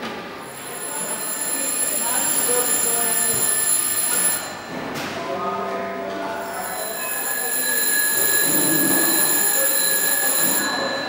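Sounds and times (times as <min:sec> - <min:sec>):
high-pitched electronic telephone tone: 0:06.7 - 0:11.0.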